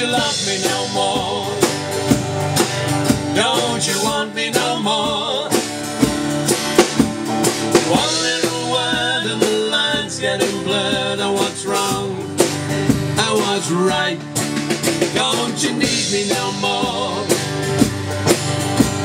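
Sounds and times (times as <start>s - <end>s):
man singing into a microphone: 0.0s - 1.9s, 3.3s - 5.7s, 7.8s - 12.5s, 13.1s - 14.4s, 15.0s - 17.5s
acoustic guitar strumming: 0.0s - 19.0s.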